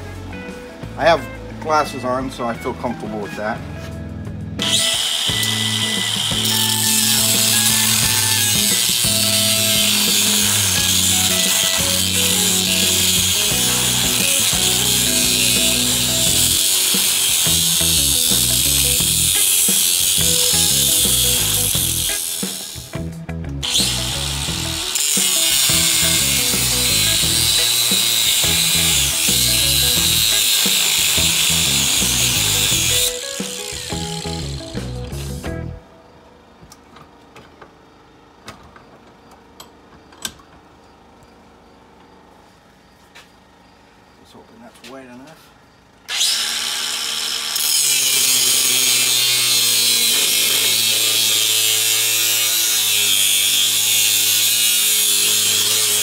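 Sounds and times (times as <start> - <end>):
angle grinder cutting metal: 4.6 - 23.0, 23.6 - 35.5, 46.1 - 56.0.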